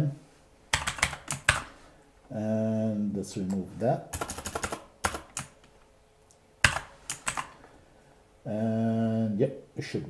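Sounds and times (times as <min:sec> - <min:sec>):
computer keyboard typing: 0:00.7 - 0:01.7, 0:04.1 - 0:05.6, 0:06.6 - 0:07.6.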